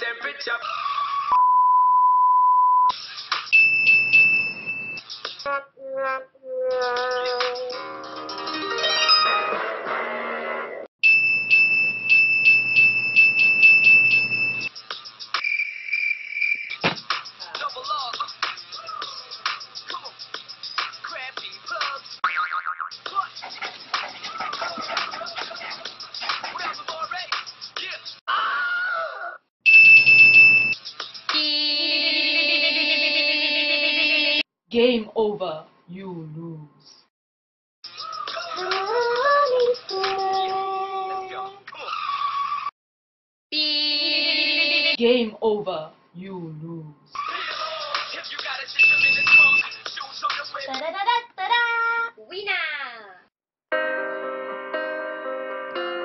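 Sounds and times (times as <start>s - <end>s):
high-pitched alarm beep: 11.0s - 14.7s, 29.7s - 30.8s, 48.8s - 49.8s
long electronic beep: 29.7s - 30.8s, 48.8s - 49.7s
higher steady beep: 48.8s - 49.8s.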